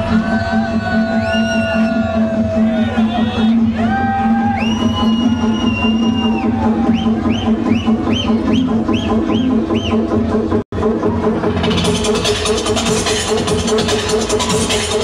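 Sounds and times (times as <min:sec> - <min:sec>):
electronic dance music: 0:00.0 - 0:15.0
steady bass beat: 0:00.0 - 0:15.0.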